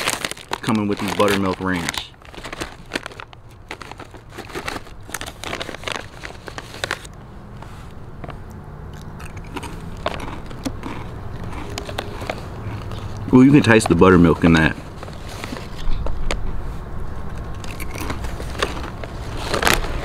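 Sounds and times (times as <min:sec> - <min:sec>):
chip bag crinkling: 0:00.0 - 0:07.1, 0:09.0 - 0:16.1, 0:17.3 - 0:20.0
person crunching chips: 0:00.0 - 0:07.1, 0:08.3 - 0:16.2, 0:17.3 - 0:20.0.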